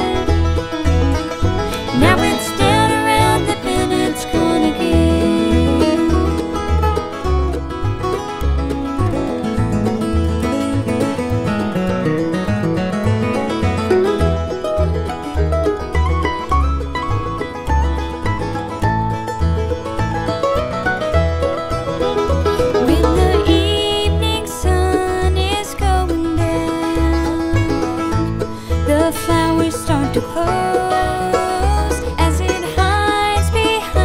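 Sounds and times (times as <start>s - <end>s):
bluegrass band playing: 0.0s - 34.0s.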